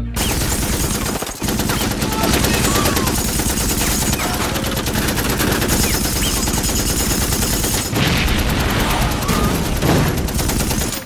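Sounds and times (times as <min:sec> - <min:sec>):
rapid automatic gunfire: 0:00.0 - 0:11.0.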